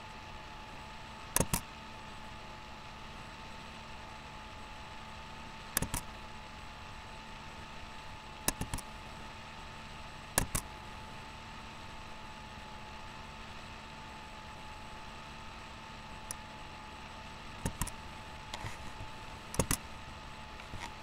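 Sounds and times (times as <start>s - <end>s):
steady hum with thin whine: 0.0s - 21.0s
sharp clicks: 1.3s - 1.7s, 5.7s - 6.1s, 8.4s - 8.9s, 10.4s - 10.7s, 17.6s - 19.9s.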